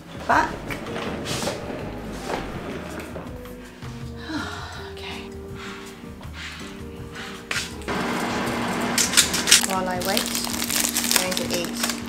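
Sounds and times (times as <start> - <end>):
soft background music: 0.0 - 7.9, 8.5 - 12.0.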